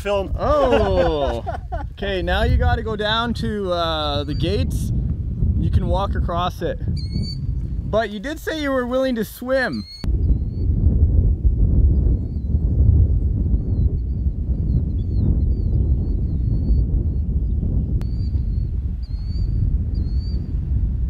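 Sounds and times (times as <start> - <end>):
wind buffeting microphone: 0.0 - 21.0
small bird chirping: 7.0 - 7.7, 9.7 - 10.7.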